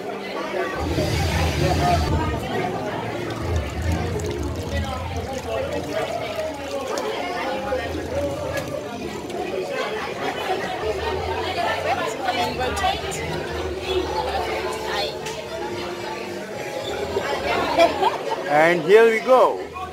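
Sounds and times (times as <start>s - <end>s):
indistinct chatter: 0.0s - 19.9s
water splashing into metal basin: 0.8s - 15.5s.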